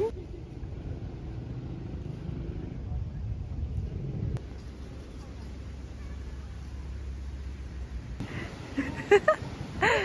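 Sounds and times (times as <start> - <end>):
faint distant voices: 4.4 - 9.3.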